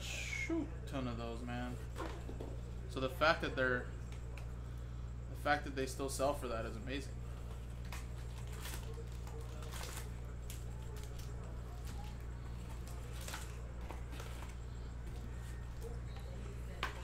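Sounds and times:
low electrical hum: 0:00.0 - 0:17.0
foil packs crinkling: 0:07.2 - 0:14.6.

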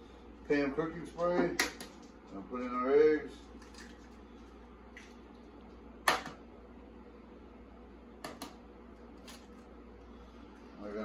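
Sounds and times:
egg shell cracking: 0:03.6 - 0:04.2.

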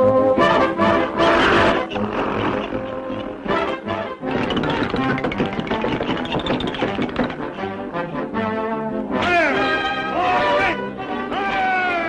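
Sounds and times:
orchestral cartoon music: 0:00.0 - 0:12.0.

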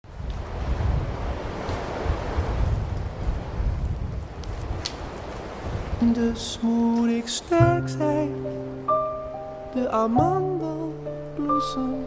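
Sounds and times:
wind blowing in gusts: 0:00.0 - 0:11.3.

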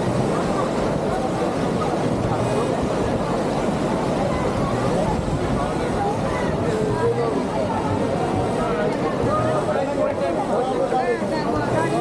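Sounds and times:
crowd talking: 0:00.0 - 0:12.0
loud steady rushing roar: 0:00.0 - 0:12.0.

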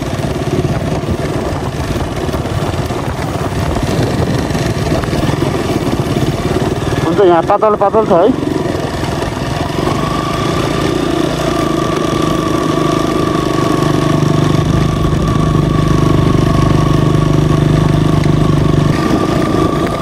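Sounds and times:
motorcycle engine at low revs: 0:00.0 - 0:20.0.

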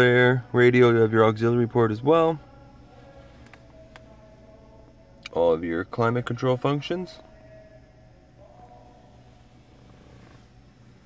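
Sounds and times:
faint low hum in car cabin: 0:00.0 - 0:11.0.

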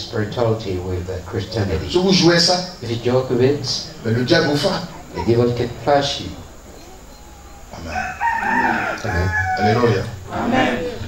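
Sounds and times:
rooster crowing: 0:03.8 - 0:11.0.

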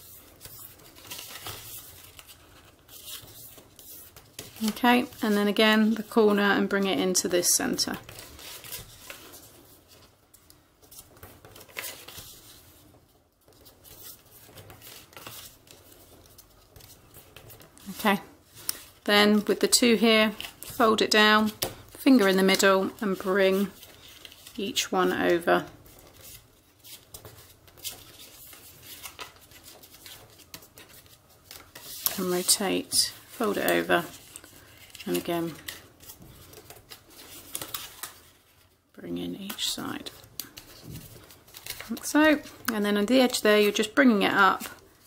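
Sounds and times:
paper rustling and sliding: 0:00.0 - 0:06.3, 0:07.7 - 0:19.1, 0:20.0 - 0:38.8, 0:39.5 - 0:42.6
light crisp paper clicks: 0:00.4 - 0:05.3, 0:25.3 - 0:38.3, 0:39.4 - 0:42.8.

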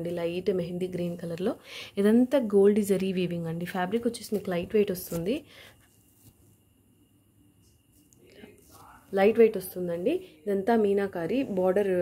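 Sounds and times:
person speaking: 0:02.0 - 0:05.4, 0:08.0 - 0:12.0.

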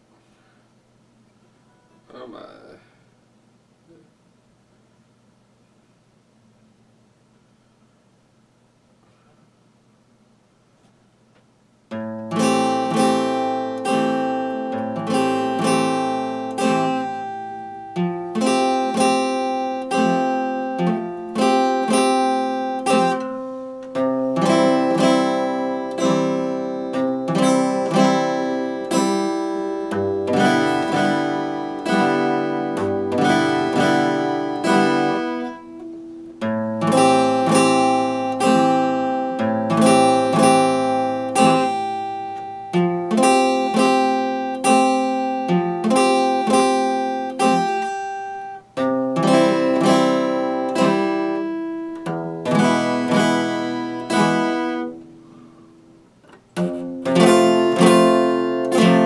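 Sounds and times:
acoustic guitar strumming: 0:11.8 - 0:59.0.

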